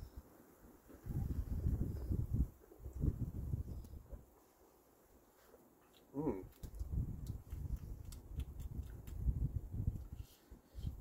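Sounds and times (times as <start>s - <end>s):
wind rumble on microphone: 0.9s - 4.3s, 6.4s - 11.0s
faint small clicks: 5.8s - 9.2s.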